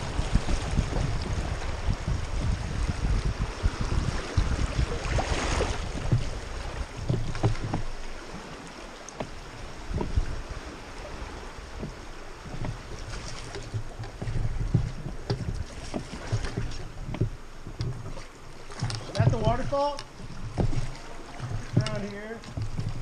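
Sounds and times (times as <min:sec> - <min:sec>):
small water splashes: 0:00.0 - 0:23.0
water sloshing around oars: 0:00.0 - 0:23.0
wind buffeting microphone: 0:00.0 - 0:23.0.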